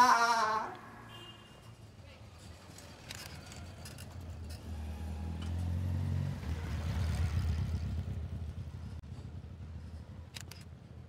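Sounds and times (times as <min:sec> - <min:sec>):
vehicle engine rumble passing: 0:02.2 - 0:11.0.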